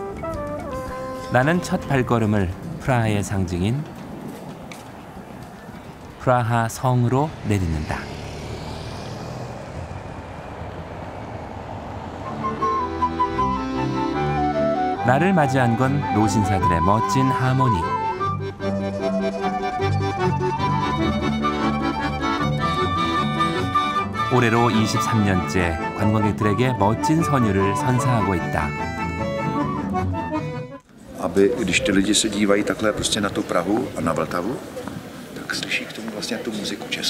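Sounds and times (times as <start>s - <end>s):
accordion: 0.0s - 3.6s, 12.2s - 34.6s
footsteps on stone paving: 0.0s - 6.3s, 33.7s - 36.9s
flute: 12.2s - 32.5s
violin: 12.2s - 34.0s
double bass line: 15.6s - 30.8s.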